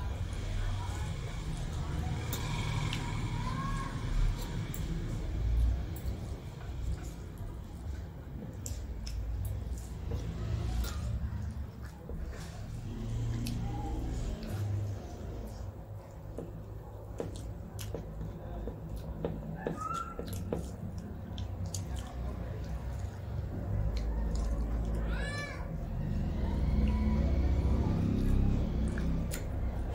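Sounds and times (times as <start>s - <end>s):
chewing: 0.8s - 25.1s, 26.1s - 29.9s.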